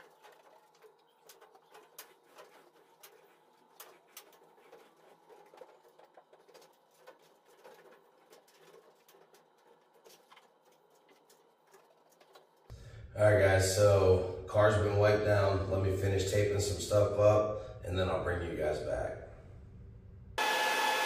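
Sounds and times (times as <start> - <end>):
towel rubbing car body: 1.2 - 12.6.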